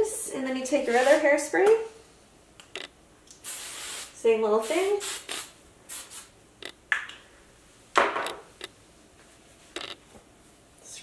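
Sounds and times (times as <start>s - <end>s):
hairspray spraying: 3.4s - 6.3s.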